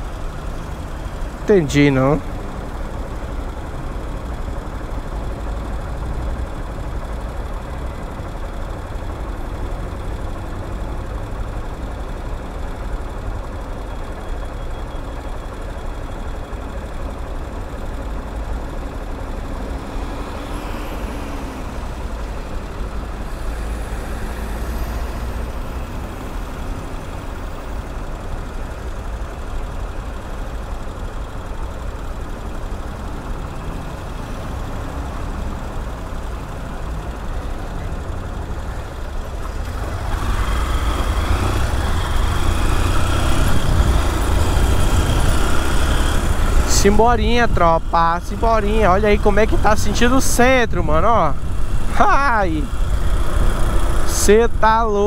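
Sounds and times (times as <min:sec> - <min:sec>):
city traffic: 0:00.0 - 0:55.0
motorcycle engine idling: 0:26.9 - 0:50.6.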